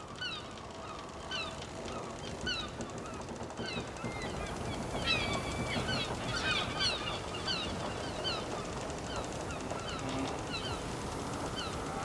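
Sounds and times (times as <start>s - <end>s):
seabirds calling: 0.2s - 12.0s.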